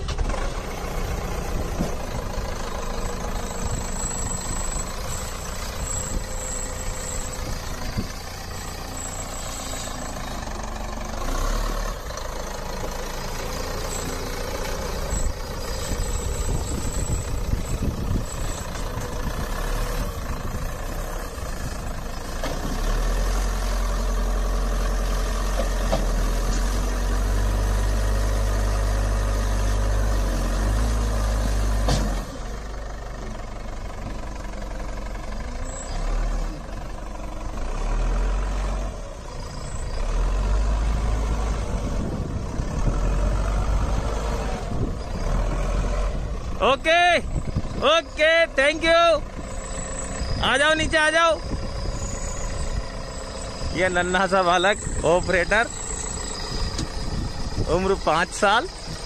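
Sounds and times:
diesel engine rumbling: 0.0s - 59.0s.

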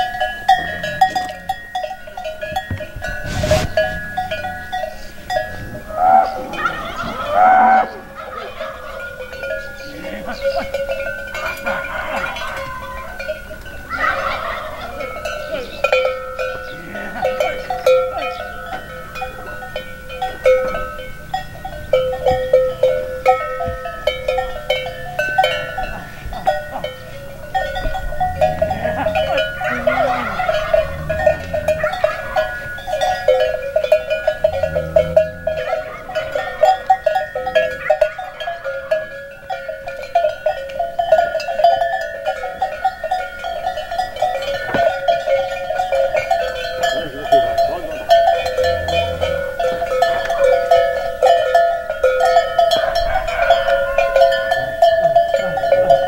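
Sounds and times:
cattle bells clanking: 0.0s - 56.0s
cattle calls: 0.0s - 56.0s.

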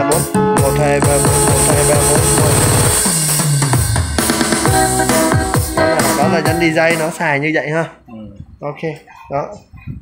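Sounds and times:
keyboard drum and bass accompaniment: 0.0s - 7.8s
held bass note: 1.0s - 3.1s
stuttering drum run: 1.0s - 4.8s.

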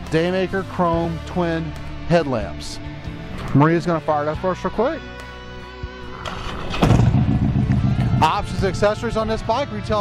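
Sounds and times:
background music held chord: 0.0s - 10.0s
motorcycle engine starting: 6.0s - 9.6s.

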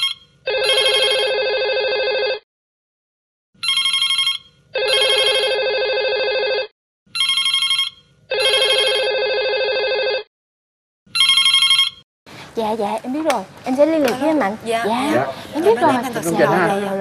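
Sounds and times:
telephone ringing: 0.0s - 2.4s, 3.6s - 10.3s, 11.2s - 12.0s.

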